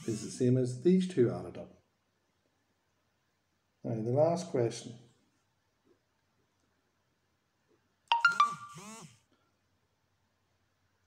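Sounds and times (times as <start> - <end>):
phone notification chime: 8.1 - 8.8
short wavering tone: 8.1 - 8.8.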